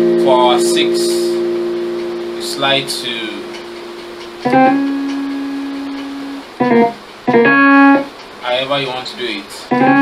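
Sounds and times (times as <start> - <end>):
keyboard chords: 0.0 - 8.2, 9.7 - 10.0.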